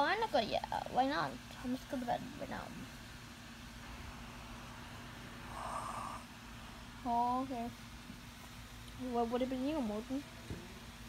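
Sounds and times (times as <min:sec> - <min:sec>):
steady low hum: 0:00.0 - 0:11.0
even hiss: 0:03.6 - 0:07.8.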